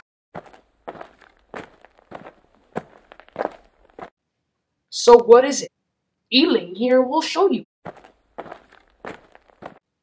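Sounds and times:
footsteps: 0:00.4 - 0:04.1, 0:07.8 - 0:09.8.

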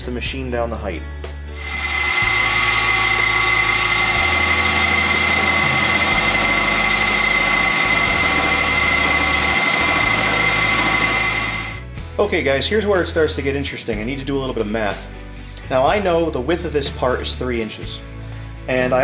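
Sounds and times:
background music: 0:00.0 - 0:19.0
milling machine cutting metal: 0:01.6 - 0:11.8
steady high tone: 0:01.6 - 0:11.9.

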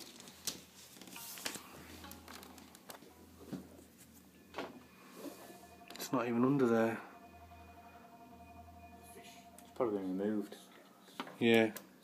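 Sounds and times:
clicks and rustles of handling parts: 0:00.0 - 0:03.0.

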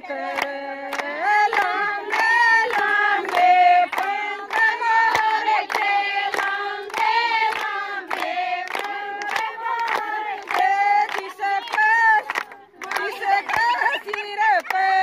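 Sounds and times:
women singing folk song: 0:00.0 - 0:15.0
handclaps: 0:00.2 - 0:15.0.

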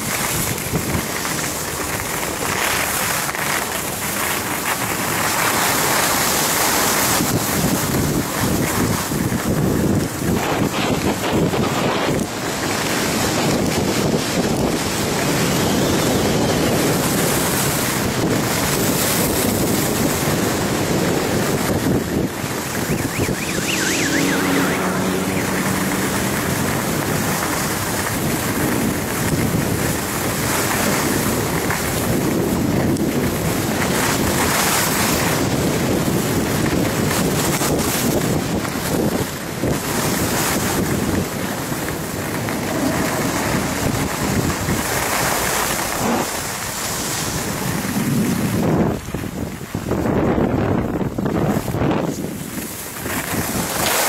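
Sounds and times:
skis scraping on snow: 0:00.0 - 0:49.3, 0:51.4 - 0:54.0
wind on microphone: 0:00.0 - 0:54.0
faint pitched sound: 0:22.7 - 0:27.1.

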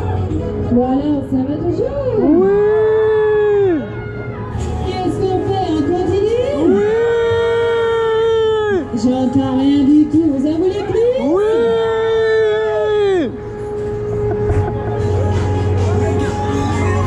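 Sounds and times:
crowd noise: 0:00.0 - 0:17.0
fairground music: 0:00.0 - 0:17.0.

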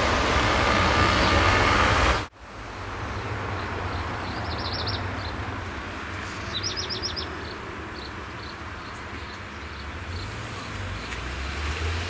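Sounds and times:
road traffic noise: 0:00.0 - 0:12.0
small bird singing: 0:03.6 - 0:05.4, 0:06.4 - 0:10.3.

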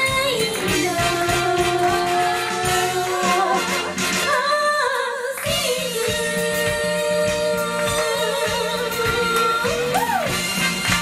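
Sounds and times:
female vocal trio singing: 0:00.0 - 0:10.2
pop backing track with beat: 0:00.0 - 0:11.0.

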